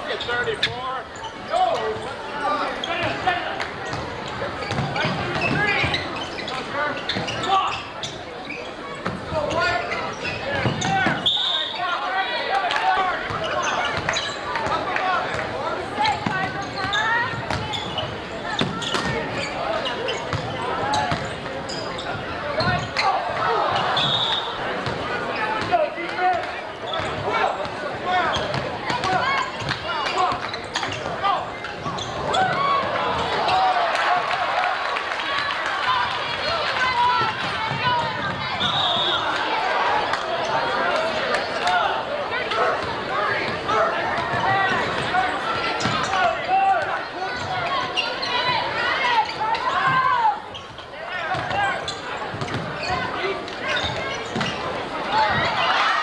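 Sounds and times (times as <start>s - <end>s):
crowd and player voices: 0.0s - 56.0s
high whistle blasts: 11.2s - 11.8s, 38.6s - 39.3s.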